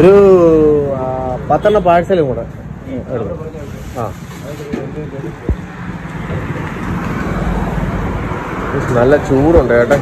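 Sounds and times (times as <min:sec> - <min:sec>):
street traffic engine hum: 0:00.0 - 0:10.0.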